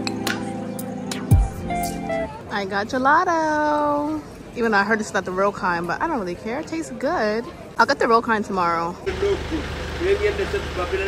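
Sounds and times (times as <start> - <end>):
vehicle engine humming: 9.1 - 11.0.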